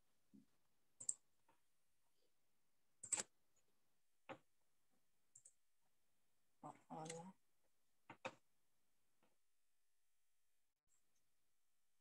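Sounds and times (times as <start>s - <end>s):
person's voice: 6.6s - 7.4s.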